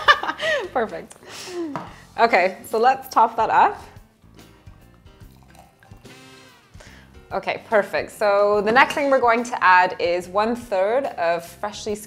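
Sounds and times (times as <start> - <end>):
background music: 0.0 - 12.0
sparkling wine pouring into glass: 4.2 - 6.8.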